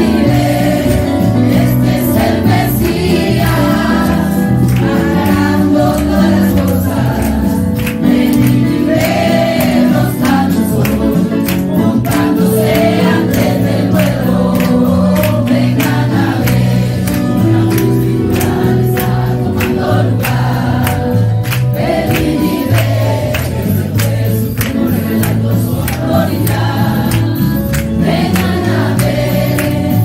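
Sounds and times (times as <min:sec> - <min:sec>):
congregation singing a hymn: 0:00.0 - 0:30.0.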